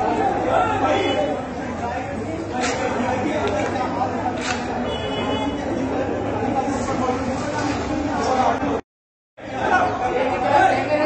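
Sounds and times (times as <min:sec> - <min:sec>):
chatter of people talking: 0:00.0 - 0:08.8, 0:09.4 - 0:11.0.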